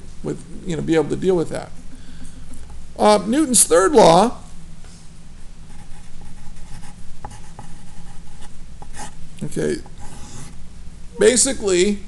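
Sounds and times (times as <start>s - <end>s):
pen scratching on paper: 5.7s - 9.2s.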